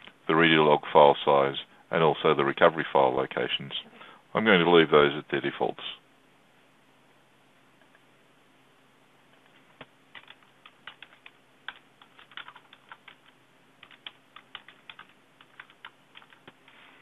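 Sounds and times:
computer keyboard typing: 10.1s - 16.7s.

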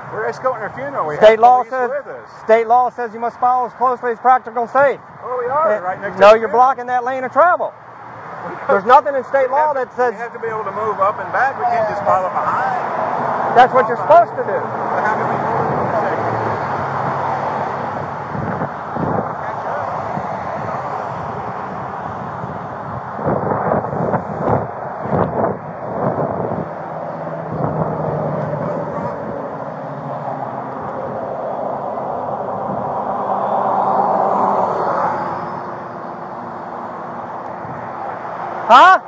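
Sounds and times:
road traffic: 0.0s - 39.0s
vehicle passing: 0.0s - 39.0s.

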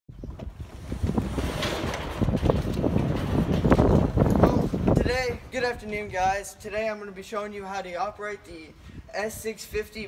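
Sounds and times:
garage door rattling open: 0.3s - 5.4s.

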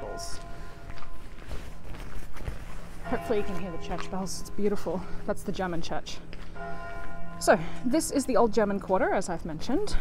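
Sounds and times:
church bells ringing: 0.0s - 1.4s, 3.0s - 9.5s
footsteps on cobblestones: 0.0s - 8.0s.

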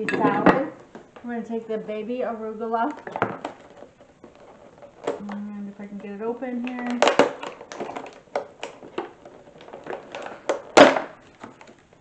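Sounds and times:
plastic container crackling: 2.3s - 12.0s.

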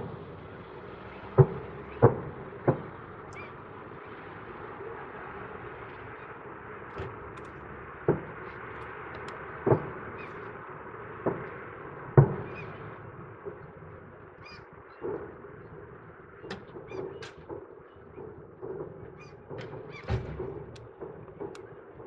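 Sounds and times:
distant fireworks booming: 0.0s - 22.0s
firework pops and crackles: 1.3s - 4.2s, 6.9s - 22.0s.

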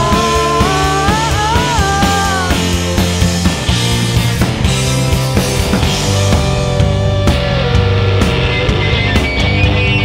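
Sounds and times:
drum kit beat: 0.0s - 10.0s
electric guitar: 0.0s - 10.0s.

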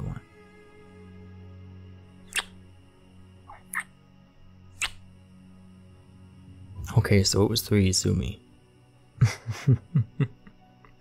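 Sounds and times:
soft background music: 0.0s - 11.0s
kissing smacks: 2.3s - 2.6s, 3.5s - 3.9s, 4.8s - 5.0s.

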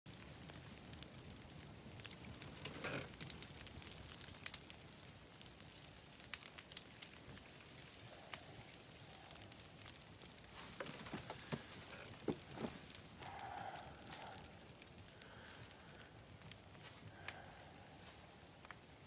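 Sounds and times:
campfire crackling and popping: 0.1s - 19.0s
soft hiss of fire: 0.1s - 19.0s.

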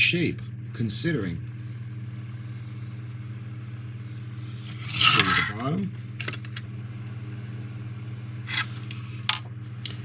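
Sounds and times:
steady low hum: 0.0s - 10.0s
plastic scrape: 4.6s - 5.5s.

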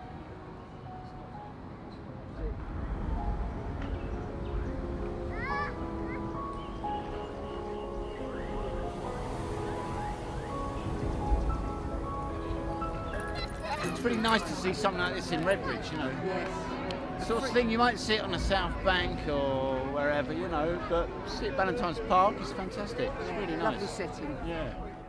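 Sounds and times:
slow ambient music: 0.0s - 25.0s.

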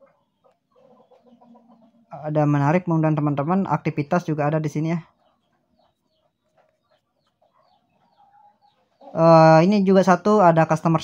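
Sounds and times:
faint bird chirps: 0.0s - 2.2s, 4.7s - 9.2s.

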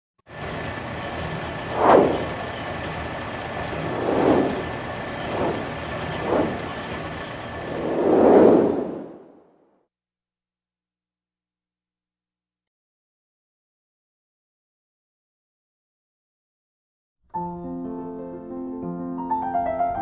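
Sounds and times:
noisy bed with high tone: 0.8s - 8.8s
whooshes: 1.6s - 2.4s, 3.7s - 9.3s.

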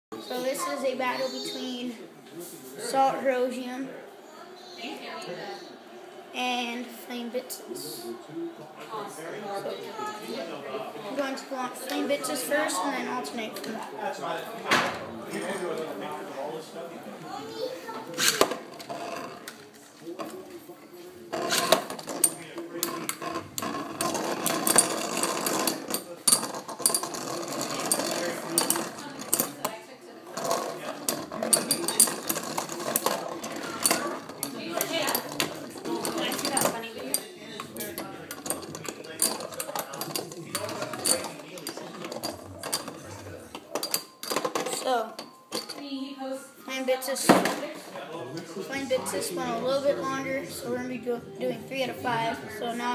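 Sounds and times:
metal spinning tops clattering: 21.4s - 29.7s, 30.3s - 45.8s.

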